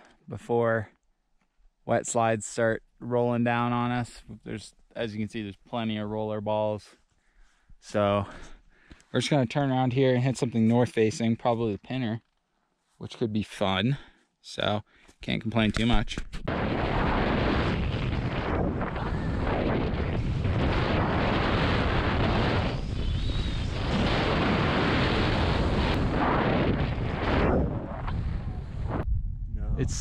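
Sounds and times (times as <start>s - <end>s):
wind buffeting microphone: 16.4s - 30.0s.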